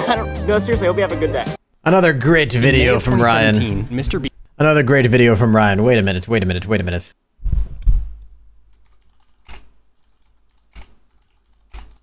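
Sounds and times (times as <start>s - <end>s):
computer keyboard key clicks: 8.7s - 12.0s.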